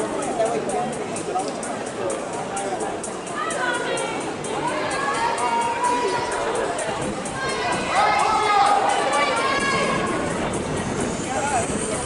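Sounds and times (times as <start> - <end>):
spectators shouting encouragement: 3.3 - 10.5.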